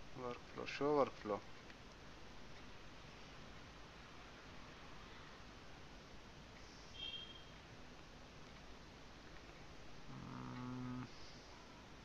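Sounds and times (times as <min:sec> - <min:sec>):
faint room noise: 0:00.0 - 0:12.0
man humming: 0:10.1 - 0:11.2.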